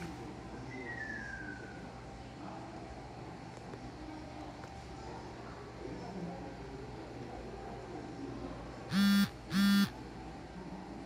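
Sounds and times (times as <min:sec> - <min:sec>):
short harsh buzzing tones: 0:08.9 - 0:09.9.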